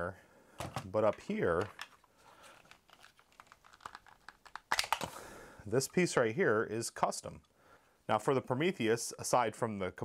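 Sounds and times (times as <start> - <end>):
plastic parts clattering: 0.6 - 5.2
plastic toy parts clicking: 2.6 - 5.1.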